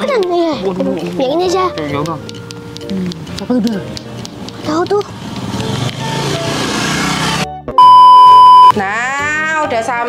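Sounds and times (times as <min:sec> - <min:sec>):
motor scooter passing: 0:05.0 - 0:07.4
loud electronic beep: 0:07.8 - 0:08.7.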